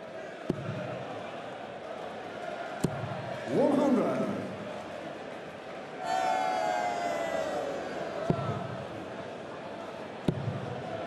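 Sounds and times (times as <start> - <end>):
murmur of large crowd: 0.0 - 11.0
crowd calling out: 6.0 - 9.2.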